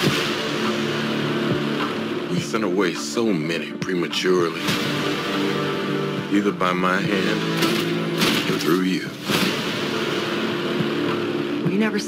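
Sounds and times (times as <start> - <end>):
trailer impact hit: 7.4 - 11.2.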